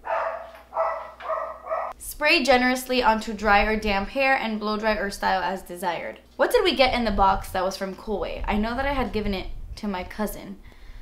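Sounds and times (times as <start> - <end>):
dog barking: 0.0 - 2.0.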